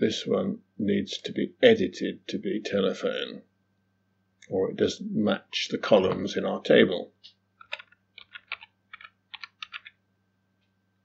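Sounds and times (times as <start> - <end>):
faint keyboard typing: 7.2 - 10.0.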